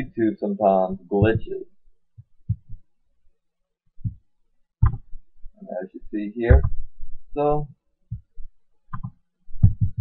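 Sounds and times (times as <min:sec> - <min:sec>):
soft low thumps: 0:00.0 - 0:02.9, 0:04.0 - 0:05.6, 0:06.4 - 0:10.0.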